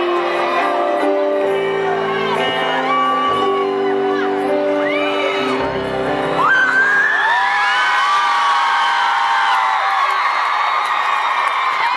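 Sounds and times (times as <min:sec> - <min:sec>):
crowd screaming and cheering: 0:00.0 - 0:11.9.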